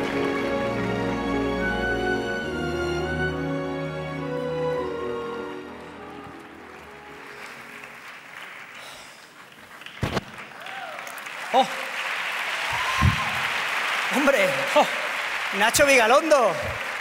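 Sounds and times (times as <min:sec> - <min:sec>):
orchestral music: 0:00.0 - 0:08.3
audience applause: 0:05.6 - 0:17.0.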